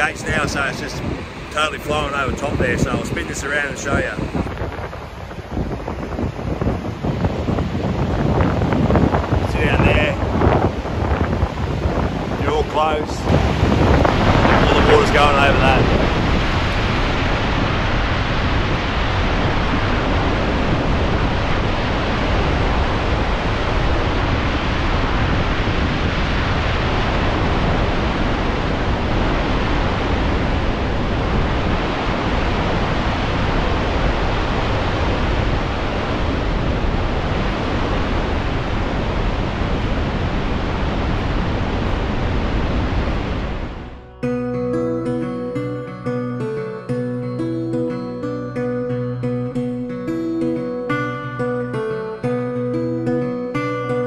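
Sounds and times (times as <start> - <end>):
water rushing over spillway: 0.0 - 43.9
acoustic guitar music: 41.1 - 54.0.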